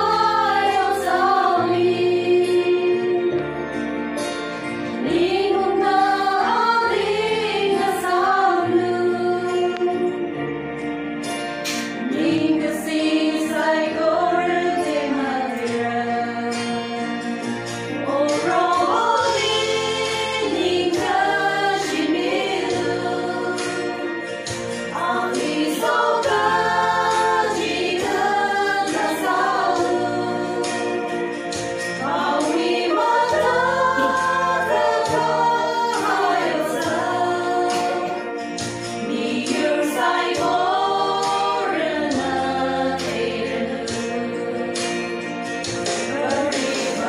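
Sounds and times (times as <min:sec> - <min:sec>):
women's choir singing: 0:00.0 - 0:03.6, 0:04.8 - 0:10.3, 0:11.9 - 0:17.2, 0:17.9 - 0:47.0.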